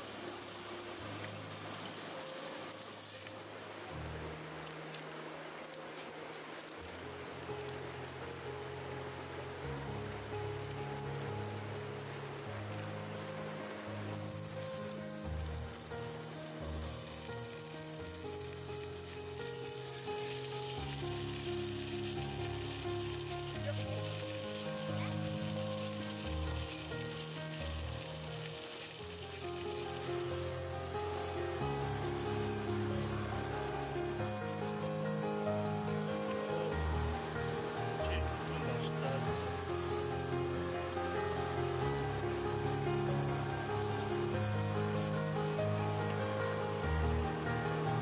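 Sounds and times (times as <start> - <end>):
sausages sizzling in a pan: 0.0 - 3.3, 14.1 - 46.2.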